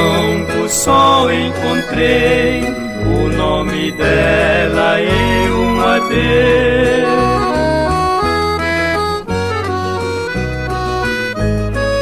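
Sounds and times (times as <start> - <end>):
accordion melody: 0.0 - 12.0
sustained bass notes: 0.0 - 12.0.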